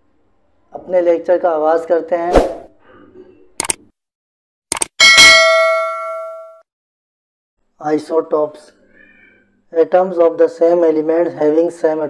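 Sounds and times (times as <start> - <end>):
quick clicks: 3.6 - 3.8, 4.7 - 5.0
bright bell ding: 5.0 - 6.6.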